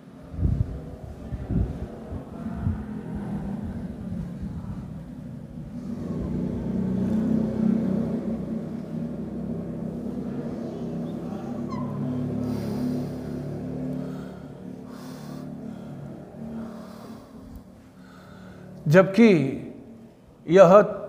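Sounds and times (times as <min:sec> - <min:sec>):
low droning rumble with hum: 0:00.0 - 0:18.9.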